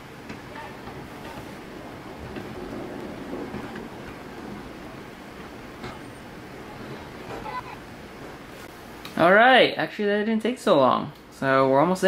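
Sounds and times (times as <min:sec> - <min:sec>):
low background rumble: 0:00.1 - 0:09.0.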